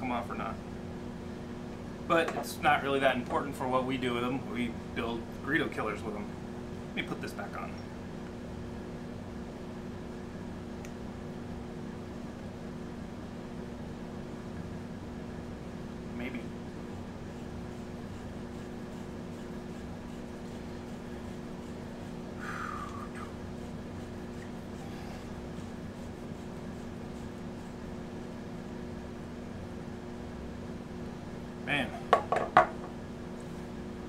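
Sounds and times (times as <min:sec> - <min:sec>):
steady electrical hum: 0:00.0 - 0:34.0
objects knocking on wooden table: 0:32.1 - 0:33.0.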